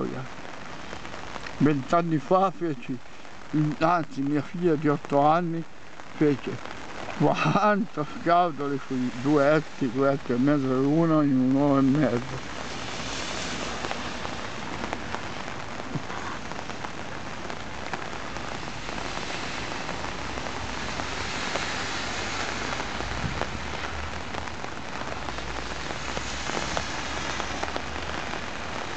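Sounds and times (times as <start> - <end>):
raindrops ticking: 0.0 - 28.9
steady rain falling: 0.0 - 28.9.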